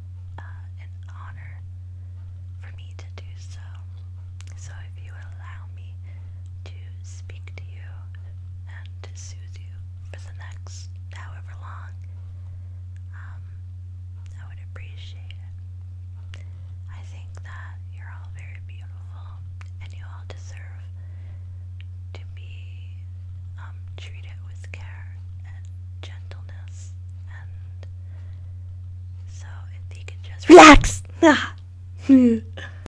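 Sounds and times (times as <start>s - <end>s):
steady low hum: 0.0s - 32.9s
woman whispering: 0.4s - 1.6s, 2.6s - 3.9s, 4.5s - 6.0s, 6.6s - 12.0s, 14.3s - 15.5s, 16.9s - 20.9s, 22.1s - 23.0s, 23.6s - 27.8s, 29.3s - 32.6s.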